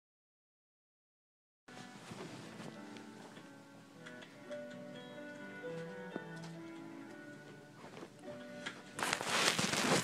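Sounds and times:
faint melody of held notes: 1.7s - 9.3s.

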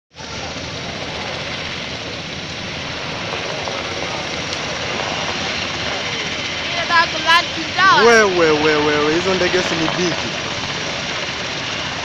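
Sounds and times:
helicopter flying low: 0.1s - 12.0s
loud drone of rotors and turbines: 0.1s - 12.0s.

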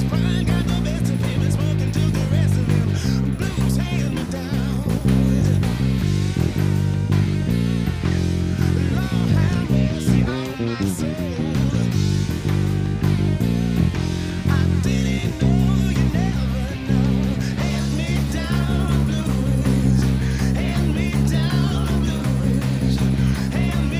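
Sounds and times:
electric bass line: 0.0s - 23.9s
guitar: 0.0s - 23.9s
person singing: 0.0s - 23.9s.

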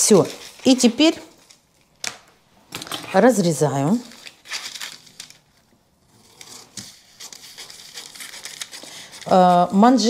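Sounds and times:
paper handling: 0.0s - 9.8s.

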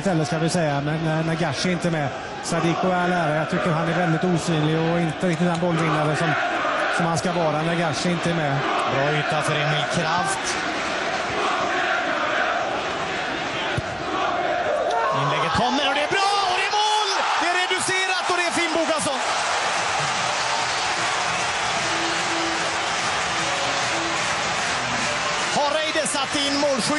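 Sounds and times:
stadium crowd voices: 0.0s - 26.9s
crowd shouting or chanting: 5.6s - 26.9s.

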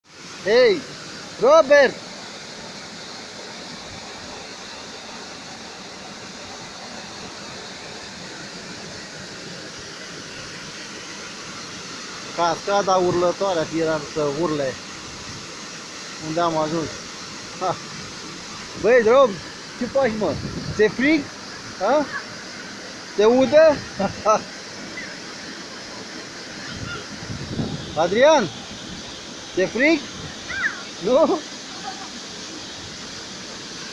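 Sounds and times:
waterfall rushing: 0.0s - 33.9s
person shouting: 30.5s - 30.8s.

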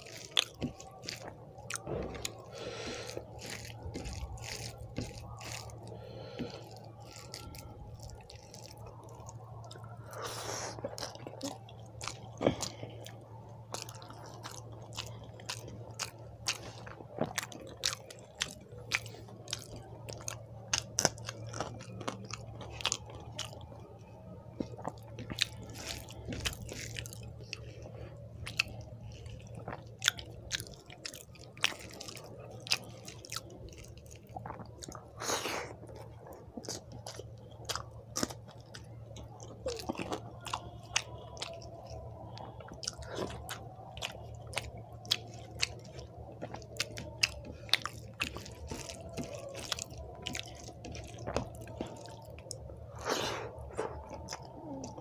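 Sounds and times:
close chewing of food: 0.0s - 55.0s
steady low hum: 0.0s - 55.0s.

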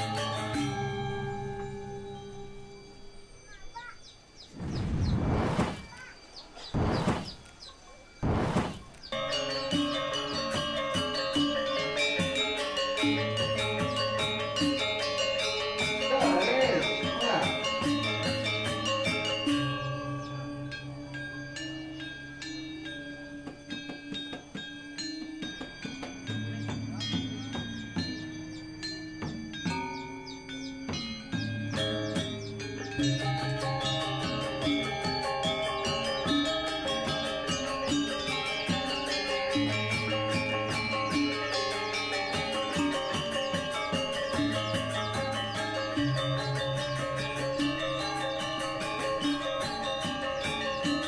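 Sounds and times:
music with steady tones: 0.0s - 5.7s, 8.2s - 51.0s
small birds chirping: 0.0s - 51.0s
loud bursts of rushing noise: 4.6s - 6.0s, 6.8s - 7.4s, 8.2s - 8.9s.

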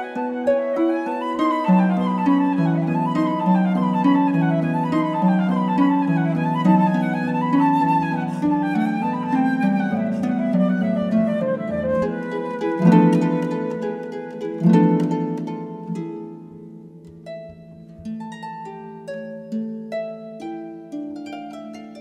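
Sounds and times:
flute melody: 0.0s - 16.5s.

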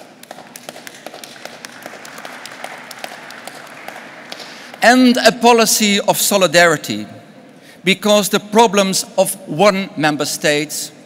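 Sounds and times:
audience applauding: 0.0s - 4.8s.

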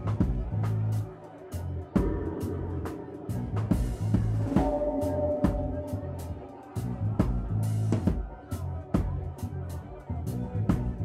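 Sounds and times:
live reggae funk band: 0.0s - 11.0s
electric bass low notes: 1.8s - 8.1s
sharp drum hits: 2.0s - 6.5s.

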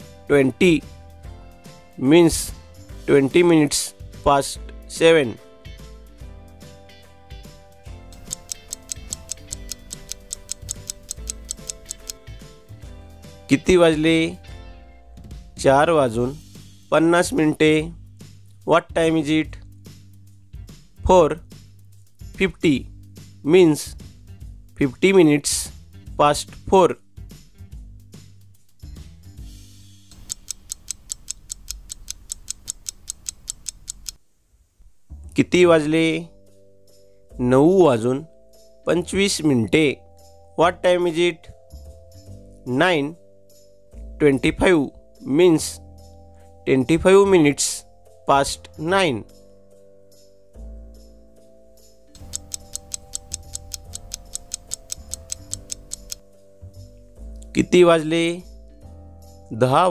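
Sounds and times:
soft background music: 0.0s - 34.2s, 35.0s - 59.9s
clock ticking: 8.1s - 12.2s, 30.1s - 34.2s, 52.2s - 56.2s.

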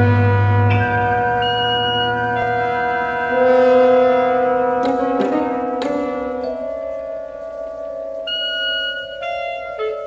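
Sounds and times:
chamber ensemble holding notes: 0.0s - 10.0s.

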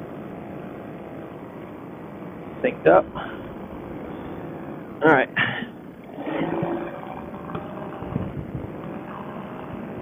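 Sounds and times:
paramotor engine rumble: 0.0s - 10.0s.

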